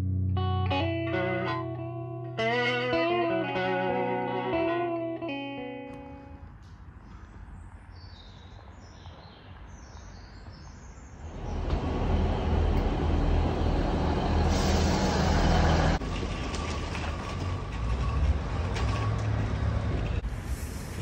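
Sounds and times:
train rumble and hum: 11.2 - 21.0
vehicle rumble with faint tone: 11.3 - 21.0.

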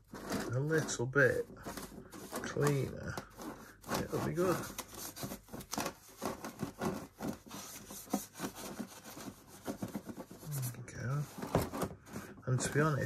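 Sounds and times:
paintbrush scraping plastic: 0.0 - 13.0
low murmured voice: 10.4 - 11.3.

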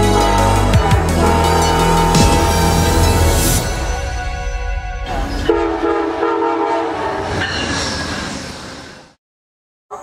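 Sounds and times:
train running rumble: 0.0 - 6.6
train horn chord: 0.0 - 7.3.

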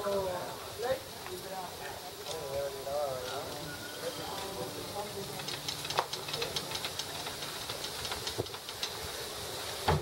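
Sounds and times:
outdoor background hiss: 0.0 - 10.0
faint ticks: 5.3 - 9.1.

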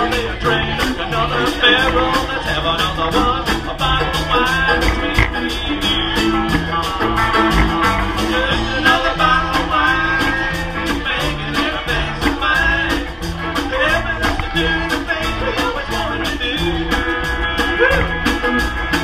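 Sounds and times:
country band playing live: 0.0 - 19.0.

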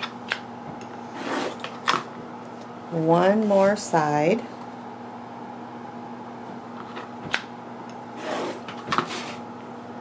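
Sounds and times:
low room hum: 0.0 - 10.0
rustling scrape of fabric: 1.1 - 1.6, 8.2 - 9.4.

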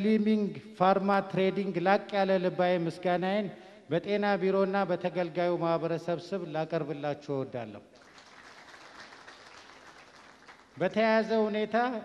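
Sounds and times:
audience applauding faintly: 8.0 - 10.9.

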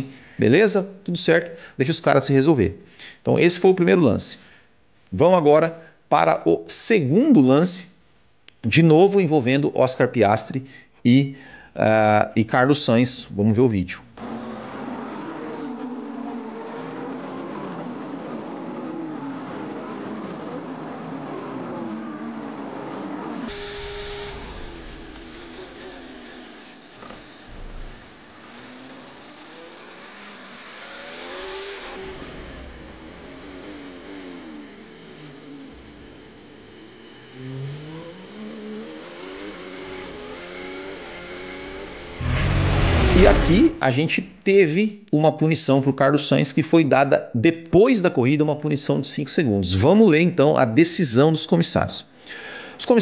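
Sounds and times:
onboard car engine: 14.1 - 43.8
racing car engines: 14.1 - 43.8
transition sound: 41.6 - 43.8.

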